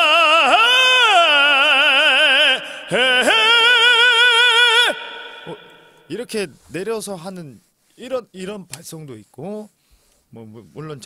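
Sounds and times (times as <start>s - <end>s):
man singing operatic notes: 0.0s - 6.2s.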